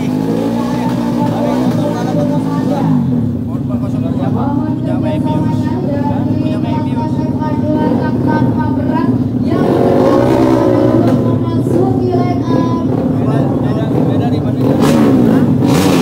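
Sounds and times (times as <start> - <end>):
people talking: 0.0 - 15.1
engines droning: 0.0 - 16.0.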